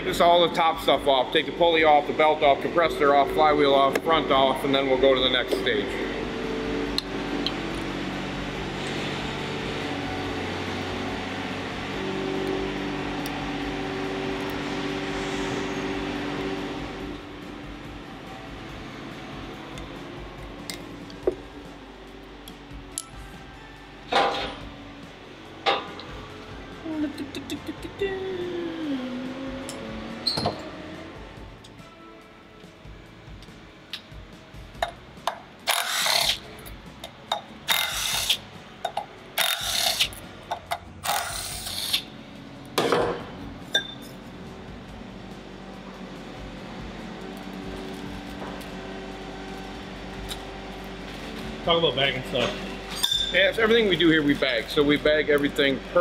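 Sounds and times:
background music: 0.0s - 56.0s
cordless power tool bursts: 35.7s - 36.4s, 37.7s - 38.4s.

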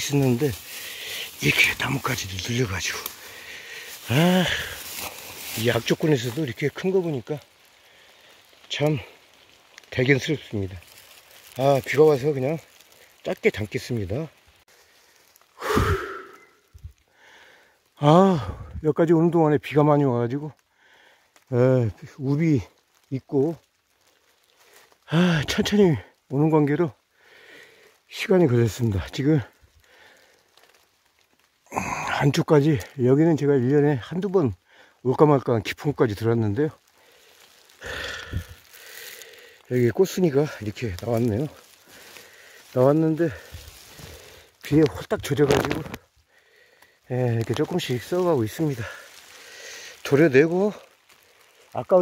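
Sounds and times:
man exhaling: 15.6s - 16.6s, 37.8s - 39.6s
man sighing: 15.6s - 16.6s, 37.8s - 39.6s.

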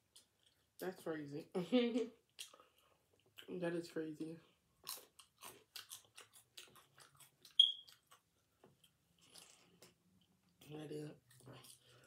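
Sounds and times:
crunchy chewing of fries: 4.6s - 10.6s, 11.2s - 12.0s.

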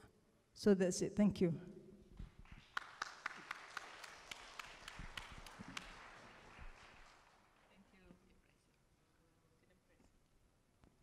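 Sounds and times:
applause: 2.2s - 8.2s.

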